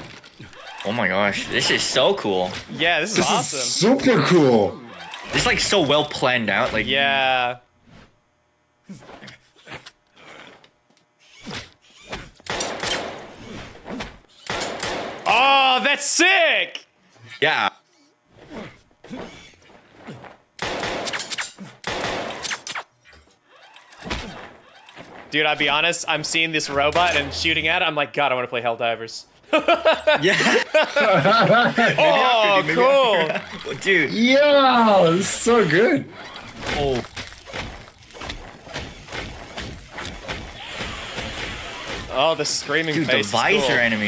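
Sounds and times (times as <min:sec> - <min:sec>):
blaster gunfire: 0:20.6 - 0:22.9.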